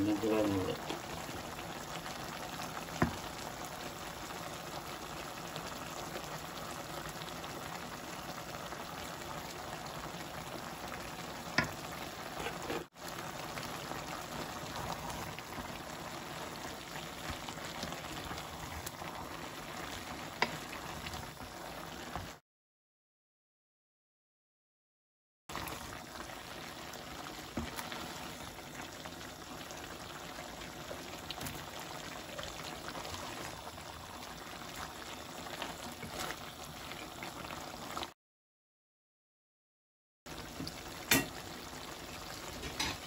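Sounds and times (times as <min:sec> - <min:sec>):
bubbling liquid hissing in pot: 0:00.0 - 0:22.4, 0:25.5 - 0:38.1, 0:40.3 - 0:43.0.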